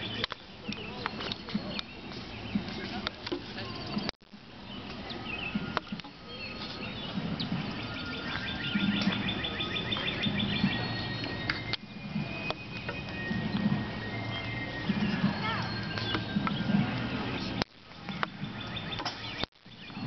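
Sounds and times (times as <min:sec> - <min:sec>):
distant murmur of voices: 0:00.0 - 0:19.4
birds singing: 0:00.0 - 0:20.0
faint music: 0:00.0 - 0:20.0
bird trilling: 0:03.6 - 0:20.0.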